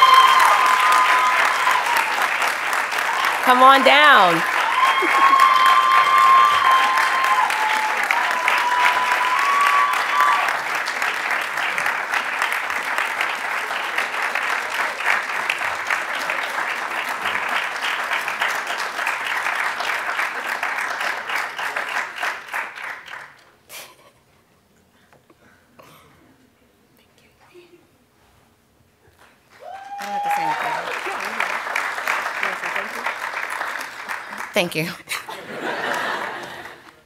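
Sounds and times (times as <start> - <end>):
audience cheering: 0.0 - 11.1, 29.6 - 32.9
audience applauding: 0.0 - 23.4, 29.5 - 37.0.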